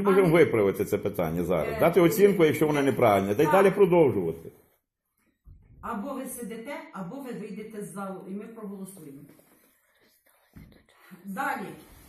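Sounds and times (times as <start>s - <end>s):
woman speaking: 1.6s - 2.2s, 5.8s - 9.4s, 11.1s - 12.0s.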